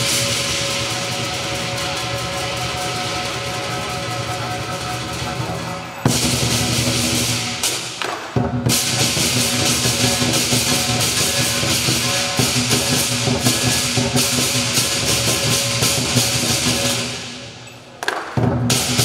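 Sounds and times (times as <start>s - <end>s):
large drum beaten rapidly: 0.0s - 17.2s, 18.4s - 19.0s
clashing hand cymbals: 0.0s - 19.0s.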